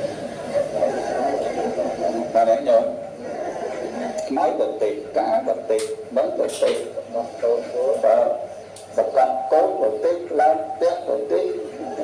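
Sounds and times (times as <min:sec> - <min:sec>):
man chanting through loudspeaker: 0:04.4 - 0:12.0.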